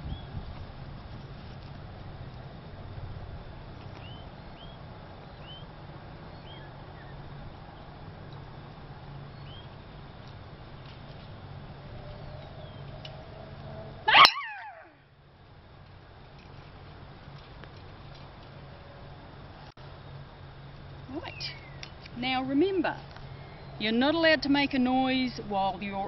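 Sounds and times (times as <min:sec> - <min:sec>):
woman screaming: 0:14.1 - 0:14.9.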